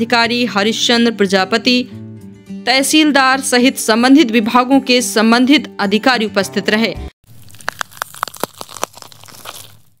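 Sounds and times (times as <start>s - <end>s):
crackling clicks and crunches: 7.3s - 10.0s.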